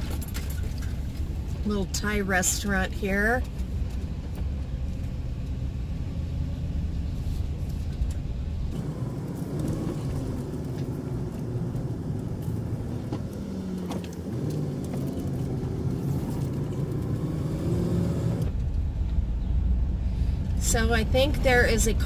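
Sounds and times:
road noise: 0:00.0 - 0:22.0
van engine: 0:00.0 - 0:22.0.

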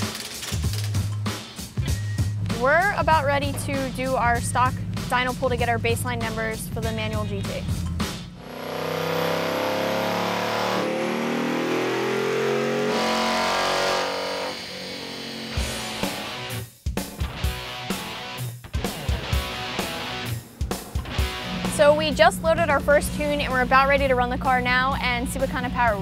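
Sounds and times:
rock music with electric guitar: 0:00.0 - 0:12.2, 0:15.0 - 0:24.5
car engine at full throttle: 0:02.6 - 0:16.6, 0:17.4 - 0:25.9.

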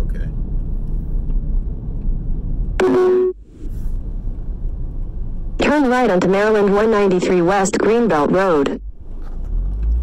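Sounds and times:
road rumble inside moving car: 0:00.0 - 0:10.0
electronic beep: 0:02.8 - 0:03.4.

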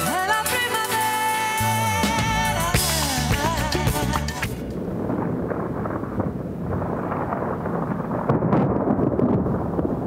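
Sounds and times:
low thunder rumbling: 0:04.6 - 0:10.0.

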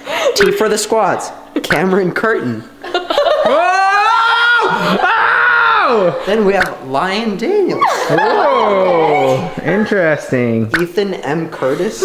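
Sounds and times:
children shrieking: 0:03.4 - 0:06.2, 0:07.8 - 0:09.5.

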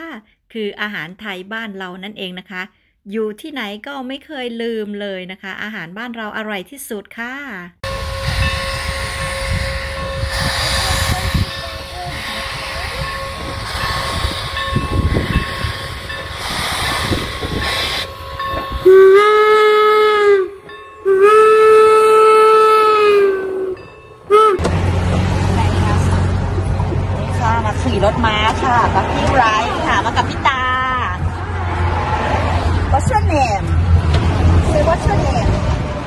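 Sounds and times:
steam whistle blasts: 0:07.8 - 0:15.6, 0:16.4 - 0:24.7
train rumbling: 0:07.8 - 0:36.0.

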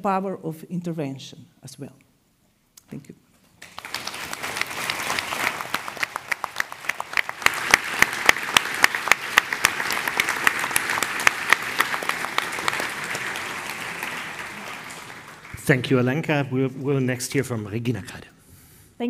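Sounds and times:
audience applauding: 0:03.6 - 0:16.4.

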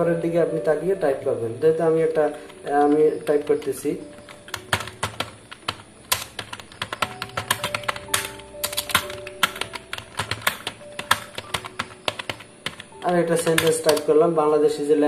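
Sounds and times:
keyboard typing clicks: 0:02.3 - 0:14.1.

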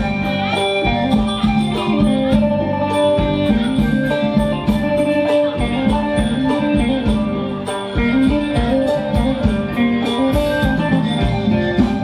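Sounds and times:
guitar: 0:00.0 - 0:12.0
live band dance music: 0:00.0 - 0:12.0.

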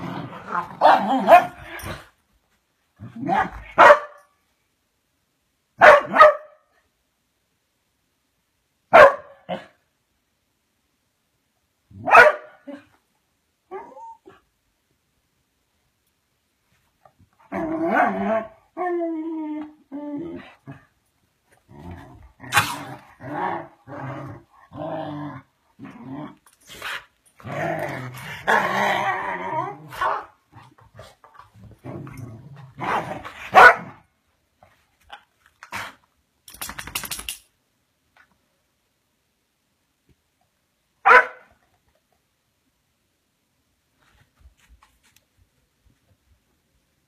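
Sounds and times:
dogs barking and growling: 0:00.0 - 0:02.2, 0:17.4 - 0:21.0, 0:21.6 - 0:34.1
dogs' claws clicking and scuffling: 0:35.0 - 0:37.5.

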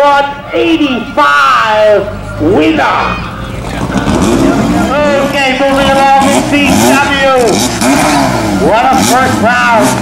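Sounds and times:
voices: 0:00.0 - 0:10.0
car engine running: 0:00.3 - 0:10.0.

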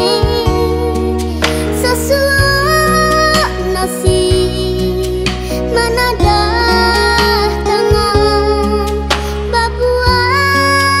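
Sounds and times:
slow rock song with female vocal: 0:00.0 - 0:11.0.

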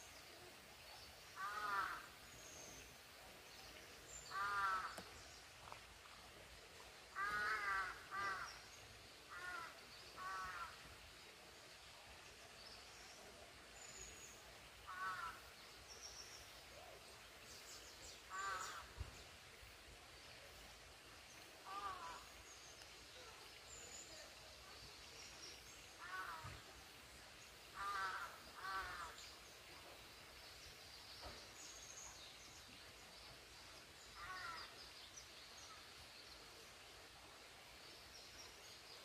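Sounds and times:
crow cawing: 0:01.4 - 0:02.1, 0:04.3 - 0:04.9, 0:07.2 - 0:08.5, 0:09.3 - 0:10.7, 0:14.9 - 0:15.4, 0:18.3 - 0:18.8, 0:21.7 - 0:22.2, 0:26.0 - 0:26.4, 0:27.8 - 0:29.2, 0:34.2 - 0:34.6.

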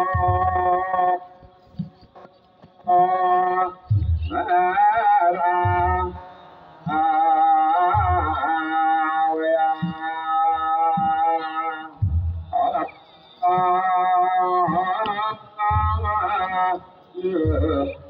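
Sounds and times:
deep drum beats: 0:00.0 - 0:01.0, 0:03.8 - 0:04.4, 0:05.5 - 0:06.2, 0:07.7 - 0:09.0, 0:09.7 - 0:12.9, 0:14.6 - 0:16.8, 0:17.4 - 0:18.0
men chanting together: 0:02.9 - 0:18.0.

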